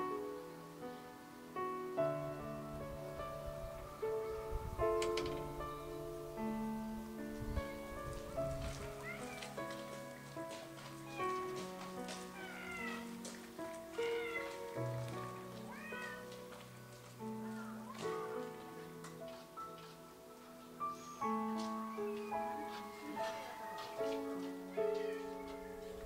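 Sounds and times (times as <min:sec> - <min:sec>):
soft background music: 0:00.0 - 0:26.0
cat meowing: 0:08.9 - 0:09.6, 0:11.0 - 0:11.5, 0:12.3 - 0:13.2, 0:14.0 - 0:14.6, 0:15.6 - 0:16.3, 0:24.7 - 0:25.6.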